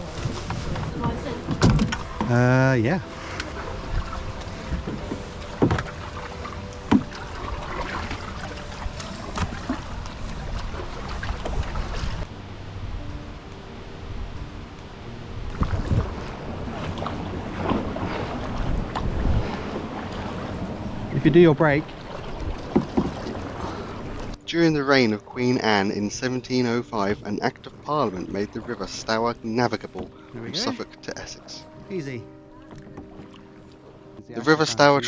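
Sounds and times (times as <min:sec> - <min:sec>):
water sloshing along hull: 0:00.0 - 0:12.4, 0:14.1 - 0:35.0
canoe paddles pulling through water: 0:00.0 - 0:13.0, 0:15.3 - 0:35.0
wind on microphone: 0:15.3 - 0:21.4.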